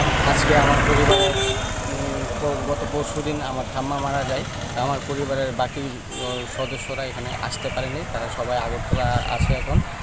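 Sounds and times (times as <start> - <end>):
man talking: 0.2 - 10.0.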